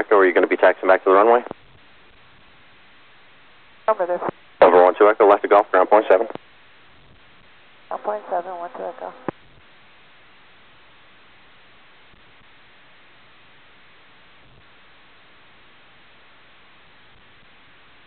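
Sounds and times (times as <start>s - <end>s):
voices over radio: 0.0s - 1.5s, 3.9s - 6.4s, 7.9s - 9.3s
faint radio hiss: 0.0s - 18.0s.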